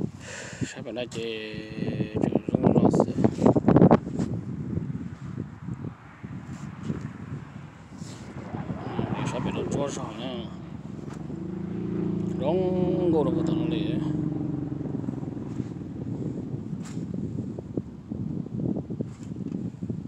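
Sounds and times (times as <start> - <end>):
people talking: 0.6 - 3.3, 8.4 - 10.7, 12.3 - 14.2
engine humming: 6.8 - 18.0.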